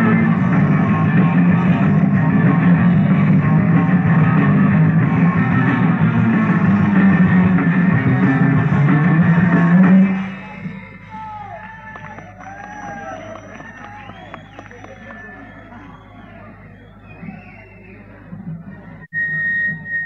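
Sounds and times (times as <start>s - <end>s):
live rock band playing: 0.0s - 10.9s
low hum: 0.0s - 14.8s
crowd cheering and whistling: 0.0s - 20.0s.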